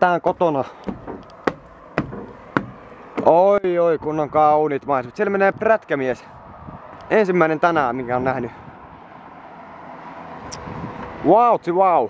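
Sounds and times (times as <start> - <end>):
vehicle passing on road: 0.8 - 11.8.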